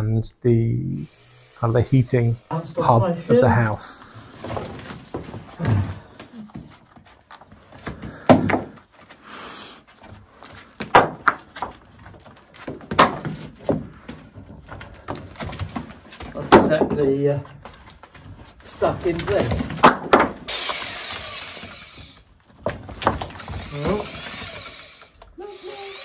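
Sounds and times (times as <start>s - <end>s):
falling grit and dirt: 3.4s - 9.2s, 9.8s - 25.9s
stones knocking and thudding: 6.9s - 8.9s, 10.0s - 21.7s, 22.5s - 24.7s.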